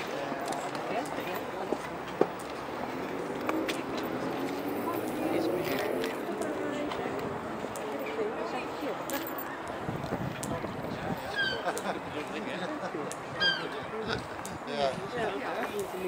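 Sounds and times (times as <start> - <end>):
people talking in background: 0.0 - 16.0.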